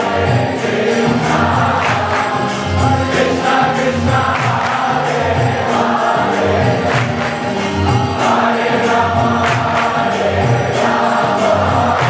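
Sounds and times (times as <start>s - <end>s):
crowd singing a chant: 0.0s - 12.0s
drums beating: 0.0s - 12.0s.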